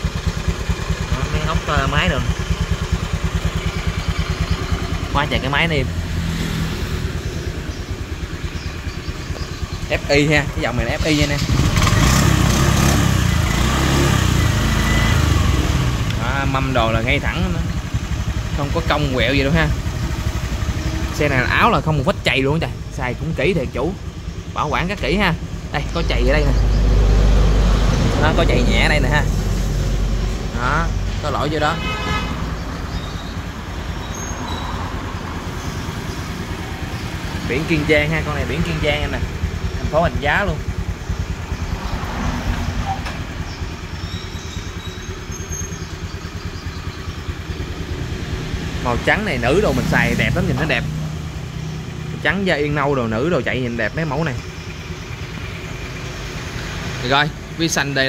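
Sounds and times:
scooter engine idling: 0.0 - 58.0.

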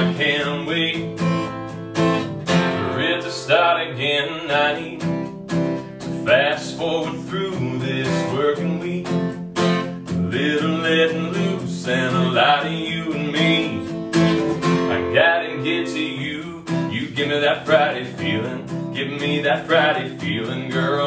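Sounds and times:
man singing: 0.0 - 1.6, 2.5 - 5.3, 6.0 - 21.0
acoustic guitar strumming: 0.0 - 21.0.

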